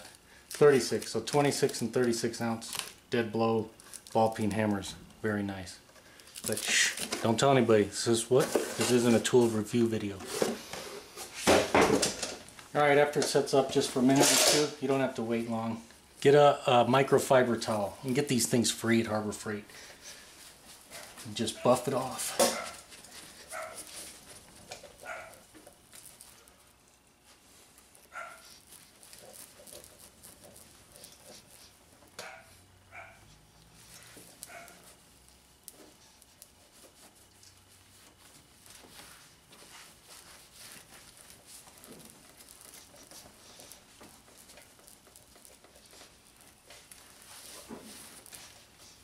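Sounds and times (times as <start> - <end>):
towel rubbing plastic lens: 19.9 - 32.6, 33.2 - 49.0
faint dog barking: 20.9 - 22.9, 23.5 - 23.9, 25.0 - 25.4, 28.1 - 28.6, 32.2 - 33.4, 34.5 - 34.9.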